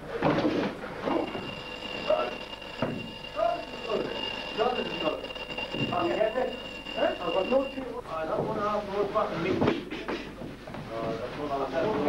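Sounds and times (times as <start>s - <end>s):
thin high whine: 0.8s - 8.2s.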